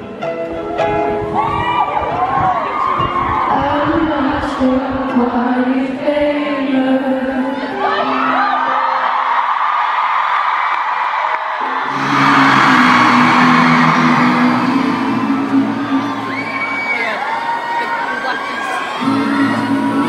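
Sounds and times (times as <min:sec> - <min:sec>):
crowd cheering and screaming: 0:01.2 - 0:03.9, 0:07.6 - 0:20.0
live music: 0:11.6 - 0:20.0
low synth bass tones: 0:11.9 - 0:17.3.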